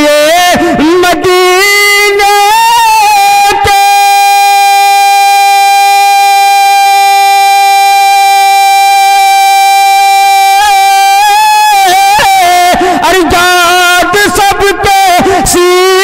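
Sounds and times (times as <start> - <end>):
man singing long high note: 0.0 - 16.0.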